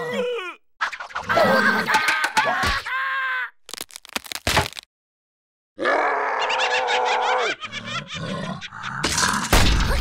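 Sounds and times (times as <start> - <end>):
cartoon monster cry: 5.8 - 8.9
choppy monster noises: 5.8 - 10.0.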